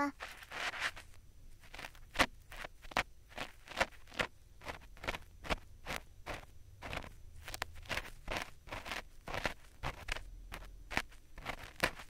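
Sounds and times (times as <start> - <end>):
ear pick scraping microphone: 0.2 - 12.0.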